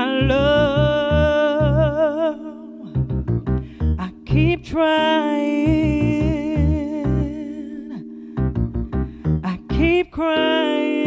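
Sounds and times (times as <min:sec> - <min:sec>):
bass notes: 0:00.0 - 0:05.0, 0:05.6 - 0:10.4
electronic keyboard chords: 0:00.0 - 0:11.0.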